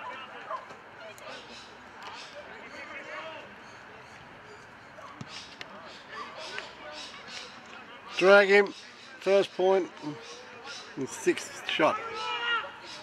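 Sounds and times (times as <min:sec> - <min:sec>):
people shouting and calling: 0:10.0 - 0:13.0.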